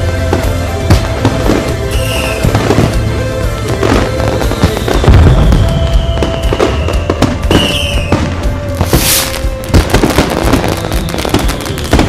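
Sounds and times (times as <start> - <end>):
fireworks banging and crackling: 0.0 - 12.0
music: 0.0 - 12.0
firework whistle falling in pitch: 1.6 - 3.0, 3.7 - 12.0.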